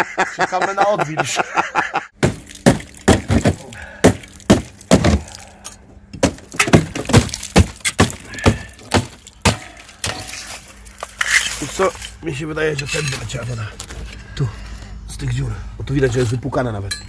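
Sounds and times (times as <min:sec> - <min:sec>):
pieces cracking off: 0:02.2 - 0:12.2.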